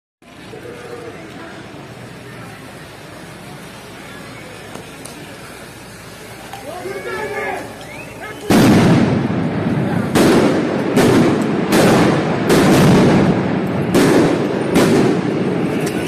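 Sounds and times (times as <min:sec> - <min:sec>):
loud explosive bangs echoing: 0:08.5 - 0:15.8.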